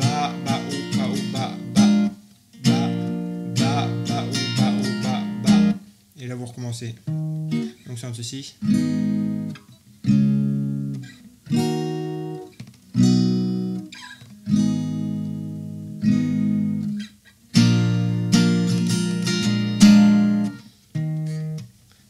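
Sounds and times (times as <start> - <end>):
acoustic guitar chords: 0.0 - 21.7.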